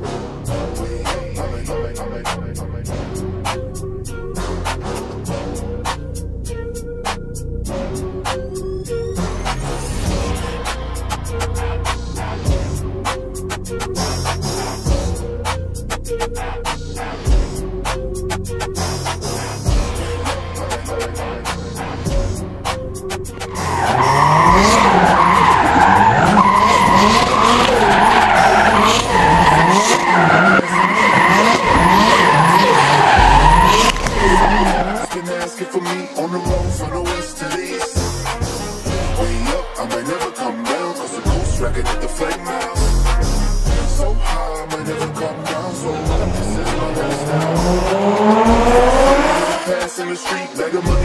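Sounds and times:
background music: 0.0 - 51.0
car engine revving hard: 23.4 - 35.2, 43.8 - 49.9
tyres squealing: 23.4 - 35.4.

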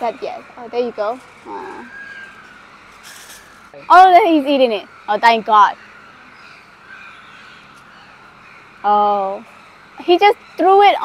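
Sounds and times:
woman's voice: 10.0 - 11.0.

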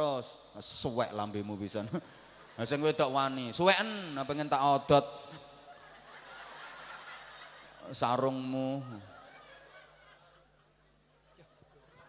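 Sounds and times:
man's voice: 0.0 - 5.4.

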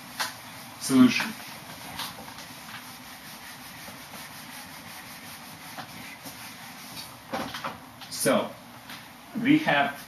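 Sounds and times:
eraser wiping whiteboard: 0.0 - 7.4.

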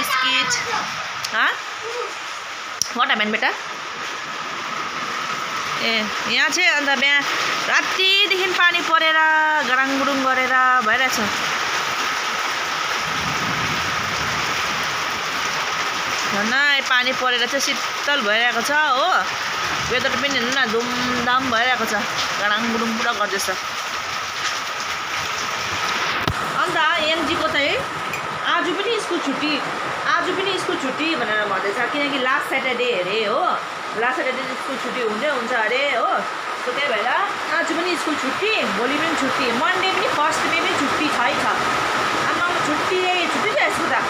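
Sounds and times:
woman talking: 0.0 - 1.6, 2.8 - 3.6, 5.7 - 11.4, 16.3 - 23.6, 26.5 - 44.0
rain on metal roof: 0.0 - 44.0.

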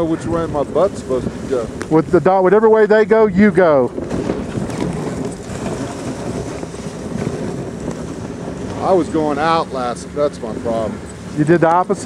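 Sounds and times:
sled runners scraping over snow: 0.0 - 12.0.

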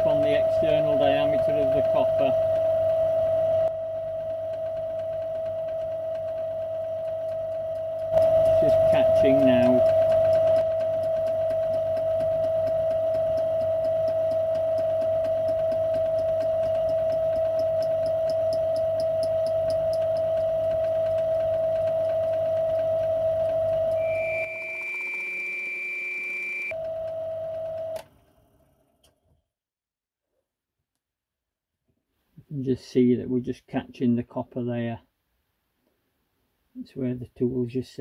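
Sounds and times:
turning tool cutting copper: 8.1 - 26.8.

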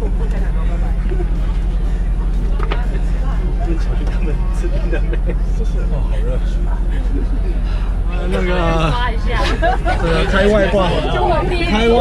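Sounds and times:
minibus engine idling: 0.0 - 12.0.

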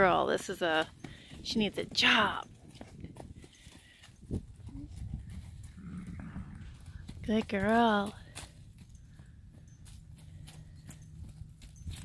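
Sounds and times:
hoofbeats on soft dirt: 0.0 - 12.0.

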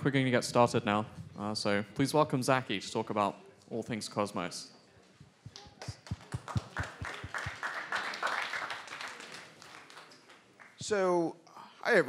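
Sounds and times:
audience applauding: 5.5 - 10.8.

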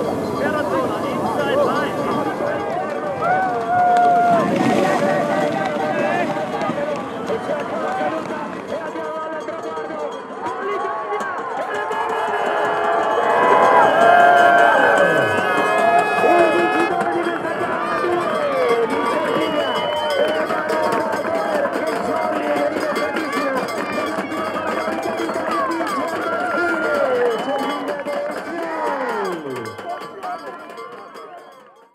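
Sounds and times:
excited voices shouting and cheering: 0.4 - 31.4
music: 8.6 - 31.9.

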